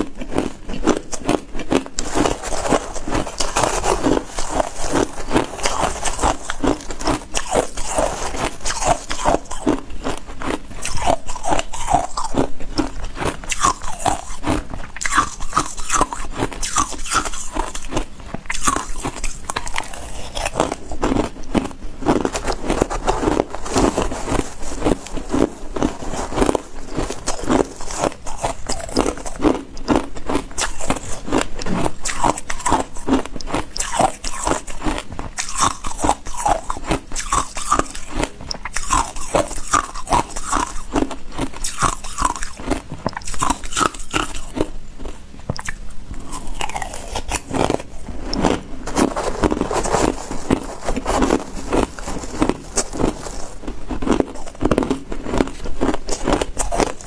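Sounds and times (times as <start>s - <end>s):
person crunching ice: 0.0s - 57.0s.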